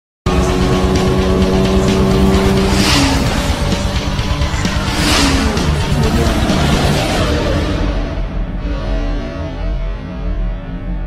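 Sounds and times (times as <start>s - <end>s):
music: 0.3s - 11.0s
sports car engine: 0.3s - 11.0s
car drive-by whooshes: 1.9s - 8.5s.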